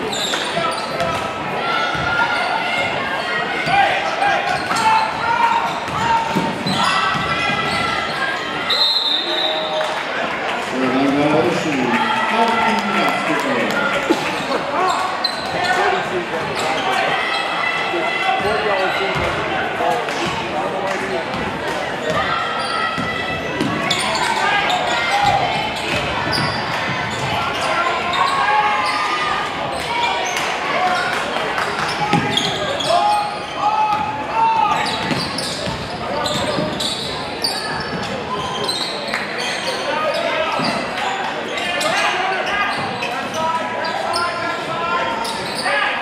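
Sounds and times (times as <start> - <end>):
indistinct voices in a gym: 0.0 - 46.0.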